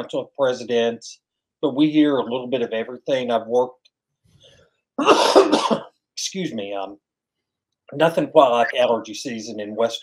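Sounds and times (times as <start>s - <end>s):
man coughing: 5.0s - 5.9s.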